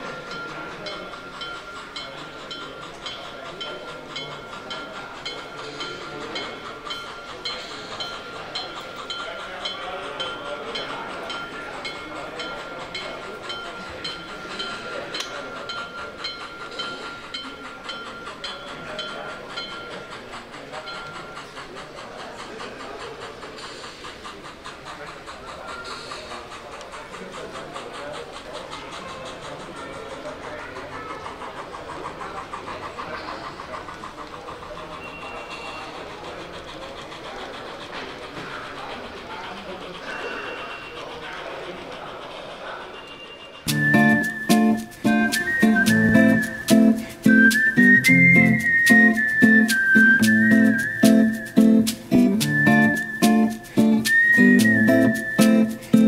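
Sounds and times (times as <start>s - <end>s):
model steam locomotive chuffing: 0.0s - 56.0s
wheels clicking over track: 0.0s - 56.0s.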